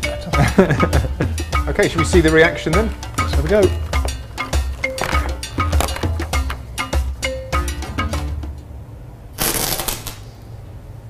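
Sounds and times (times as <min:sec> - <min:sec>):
background music with steady beat: 0:00.0 - 0:08.8.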